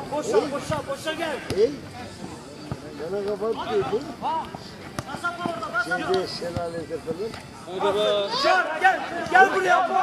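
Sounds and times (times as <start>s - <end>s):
men shouting: 8.1s - 10.0s.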